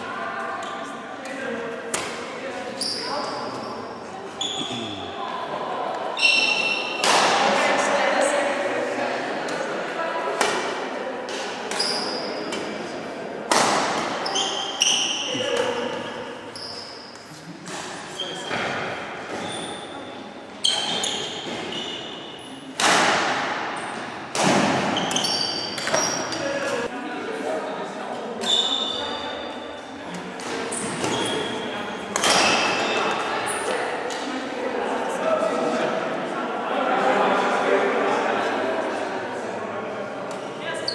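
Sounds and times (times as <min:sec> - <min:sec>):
voices of people: 0:00.0 - 0:40.9
racket hitting shuttlecock: 0:01.9 - 0:02.3, 0:10.4 - 0:12.8, 0:13.5 - 0:14.3, 0:22.8 - 0:26.9, 0:32.1 - 0:33.3
shoe squeaks on wooden floor: 0:04.4 - 0:05.0.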